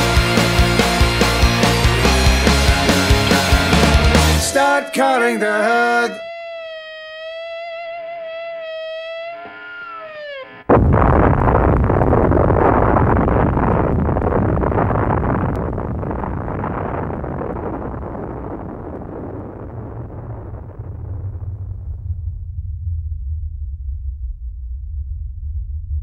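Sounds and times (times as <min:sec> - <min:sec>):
electric guitar note bending: 0:00.0 - 0:17.7
loud explosion: 0:10.7 - 0:26.0
low rumble: 0:10.7 - 0:26.0.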